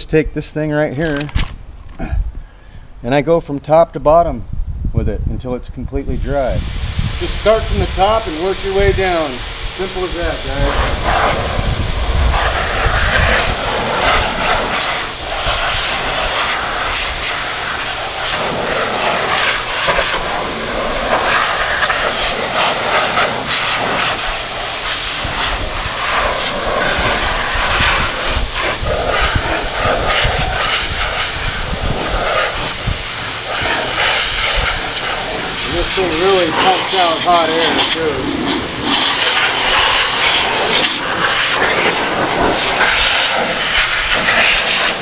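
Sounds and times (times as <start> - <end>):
dryer blowing air: 6.1 - 45.0.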